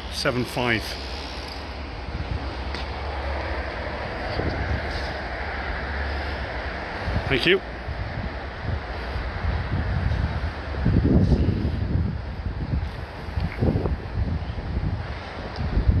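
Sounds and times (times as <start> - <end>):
wind buffeting microphone: 0.0 - 16.0.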